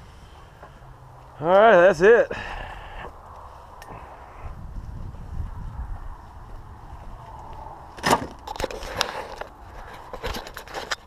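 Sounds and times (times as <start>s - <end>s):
low rumble: 2.7s - 8.0s.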